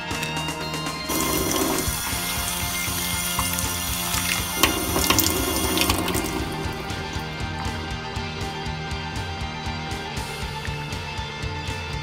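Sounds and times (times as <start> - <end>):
background music: 0.0 - 12.0
tap water filling a bowl: 1.1 - 7.8.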